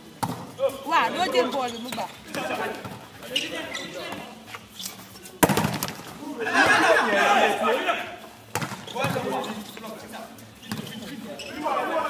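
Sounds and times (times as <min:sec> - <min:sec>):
volleyball hits: 0:05.4 - 0:06.2, 0:08.5 - 0:09.4
players shouting: 0:06.2 - 0:08.2.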